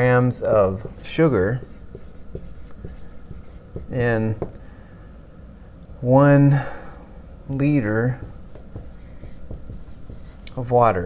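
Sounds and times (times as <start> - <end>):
marker writing on whiteboard: 0.6 - 4.6, 7.7 - 10.6.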